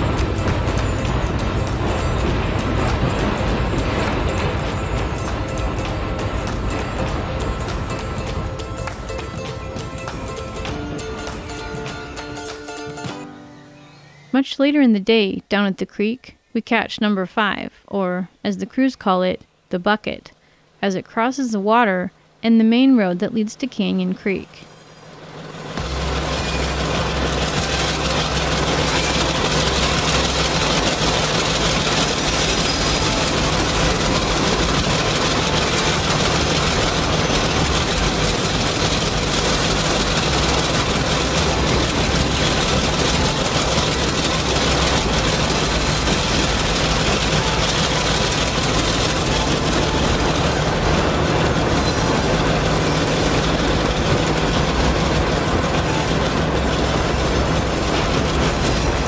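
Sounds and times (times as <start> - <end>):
model locomotive engine drone: 0.0 - 14.5, 23.6 - 59.0.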